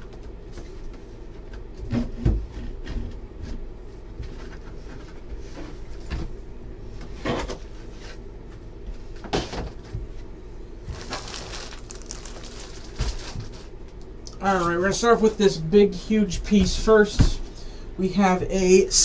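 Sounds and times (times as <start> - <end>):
plastic wrapping crinkling: 10.9 - 14.4.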